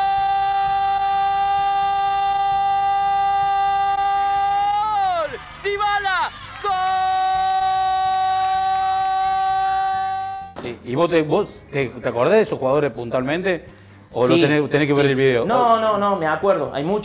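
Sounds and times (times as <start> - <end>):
commentator shouting: 0.0 - 10.6.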